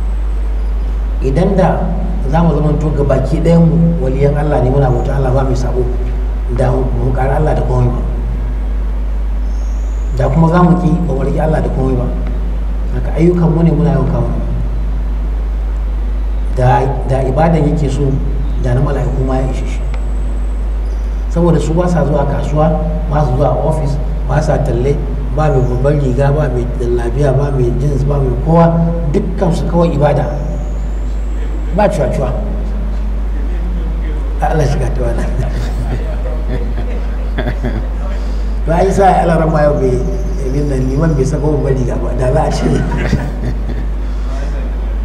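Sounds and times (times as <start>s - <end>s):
faint high whine: 0.0s - 45.0s
low electrical hum: 0.0s - 45.0s
man speaking: 1.2s - 8.2s, 10.2s - 12.2s, 12.9s - 14.6s, 16.6s - 19.9s, 21.3s - 30.6s, 31.3s - 45.0s.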